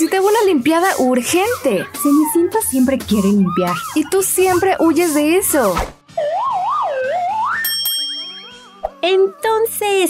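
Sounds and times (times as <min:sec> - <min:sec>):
light background music: 0:00.0 - 0:10.0
warbling cartoon whistle: 0:06.0 - 0:07.7.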